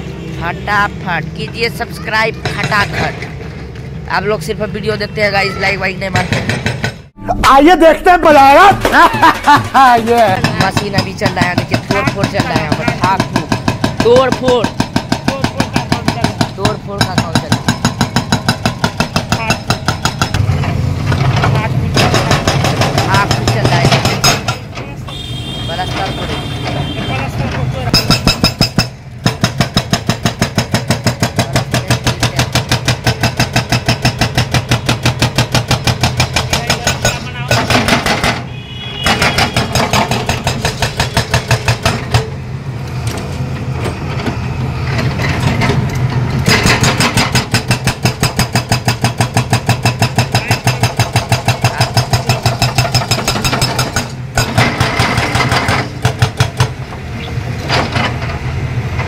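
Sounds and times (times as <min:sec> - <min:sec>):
hydraulic breaker hammering concrete: 0:06.1 - 0:07.1, 0:08.6 - 0:24.7, 0:27.9 - 0:42.4, 0:45.3 - 0:56.8
diesel engine hum: 0:41.4 - 0:47.6, 0:54.0 - 0:59.0.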